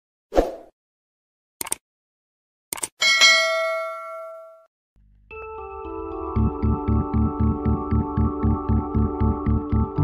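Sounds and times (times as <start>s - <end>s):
bright bell ding: 3.0s - 4.6s.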